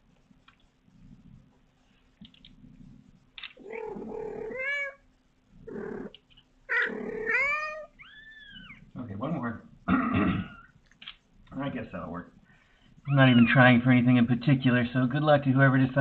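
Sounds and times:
kitten mewing: 3.6 - 5.0, 5.7 - 8.8, 13.1 - 13.8.

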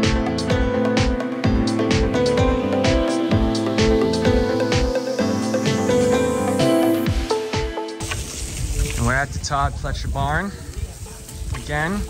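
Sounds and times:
background music with held notes: 0.0 - 8.2
water spraying from a hose: 8.0 - 12.0.

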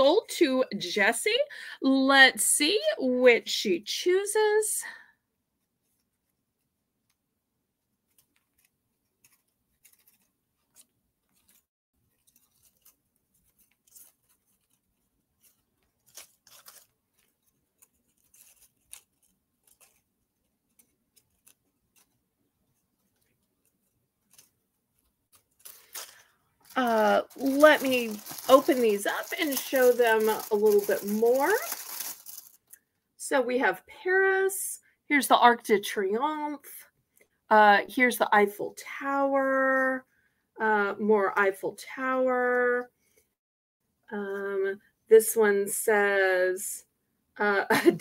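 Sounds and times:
woman speaking: 0.0 - 5.0, 26.7 - 31.8, 33.2 - 36.8, 37.5 - 40.0, 40.6 - 42.9, 44.1 - 46.8, 47.4 - 48.0
soft rustles: 7.8 - 32.6.

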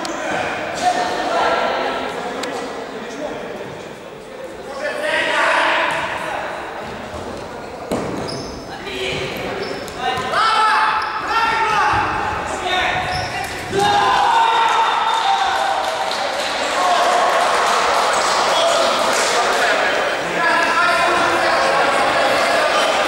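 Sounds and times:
players shouting in sports hall: 4.7 - 6.8, 8.0 - 23.0.

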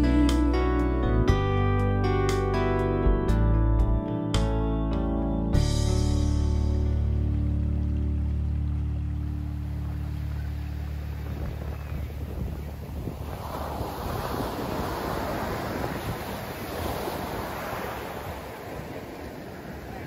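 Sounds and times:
music track: 0.0 - 11.4
waves breaking on beach: 7.9 - 20.0
wind on microphone: 9.6 - 20.0.

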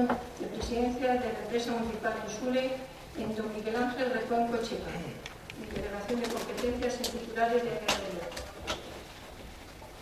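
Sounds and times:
woman speaking: 0.0 - 8.5
low room noise: 0.0 - 10.0.

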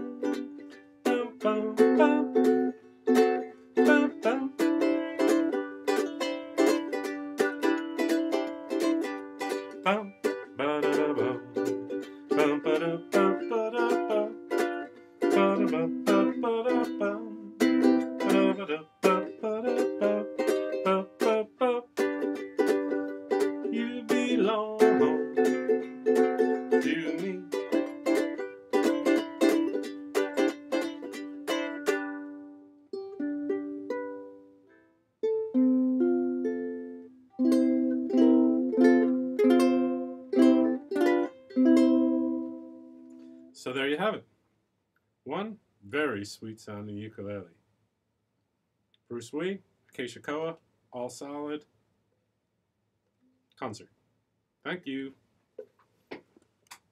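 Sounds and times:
ukulele strummed: 0.0 - 34.6, 35.2 - 44.2.

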